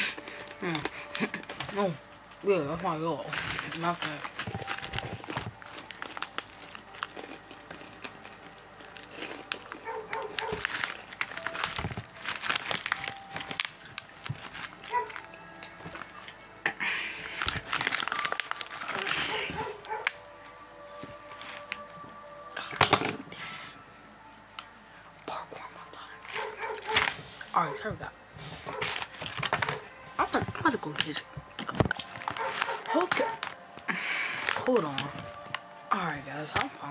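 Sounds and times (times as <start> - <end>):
music: 0.0 - 36.9
clicks and crinkling: 3.2 - 16.4, 17.3 - 22.0, 26.2 - 27.2, 28.6 - 35.7
dog barking: 9.8 - 10.7, 14.9 - 15.2, 19.2 - 20.1, 26.4 - 27.9, 28.7 - 29.0, 29.6 - 29.9, 32.4 - 33.4.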